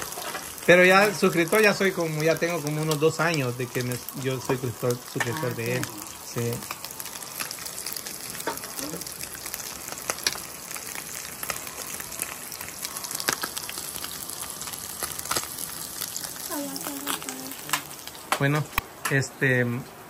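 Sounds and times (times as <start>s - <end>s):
fish sizzling in oil: 0.0s - 18.8s
oil popping and crackling: 0.0s - 18.9s.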